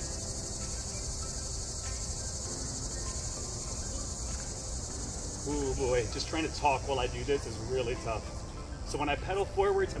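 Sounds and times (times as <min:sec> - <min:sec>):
insect chorus droning: 0:00.0 - 0:10.0.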